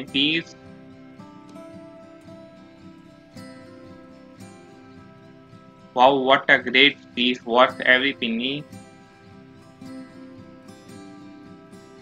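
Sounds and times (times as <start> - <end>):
instrumental music with plucked guitar: 0.0 - 12.0.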